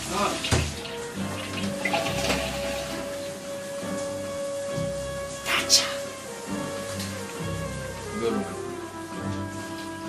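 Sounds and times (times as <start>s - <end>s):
music holding long note: 0.0s - 10.0s
shower water running: 0.0s - 10.0s.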